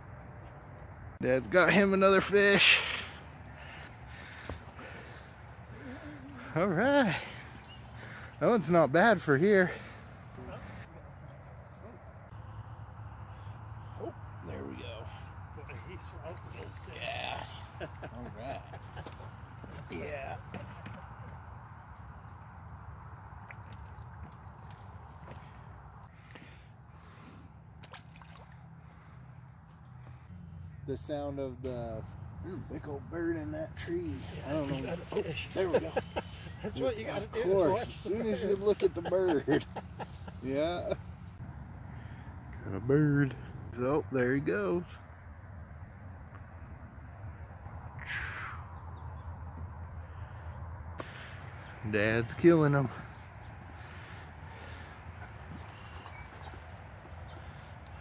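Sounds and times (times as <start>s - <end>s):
distant freeway traffic hum: 0.0s - 58.0s
harsh bird call: 47.9s - 49.3s.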